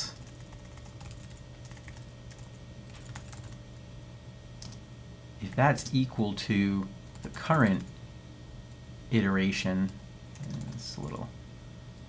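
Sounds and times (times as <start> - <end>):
keyboard typing: 0.0 - 3.6, 4.6 - 4.8, 9.8 - 10.9
steady low hum: 0.0 - 12.0.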